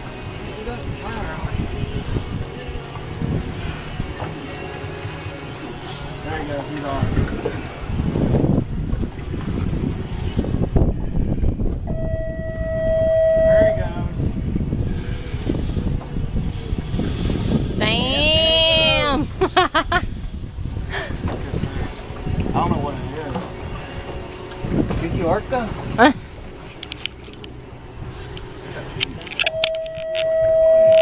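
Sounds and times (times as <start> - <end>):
rumbling wind and water: 0.0 - 31.0
steady tone: 10.7 - 14.8, 29.4 - 31.0
laughter: 19.4 - 20.1.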